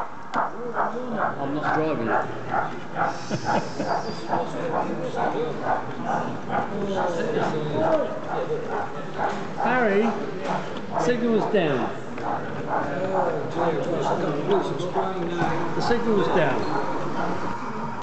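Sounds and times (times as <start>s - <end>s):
people chattering: 0.0s - 18.0s.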